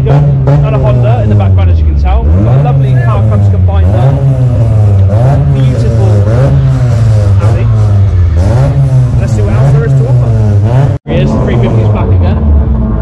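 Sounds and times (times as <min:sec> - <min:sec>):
voices: 0:00.0 - 0:12.4
car engine revving: 0:00.0 - 0:13.0.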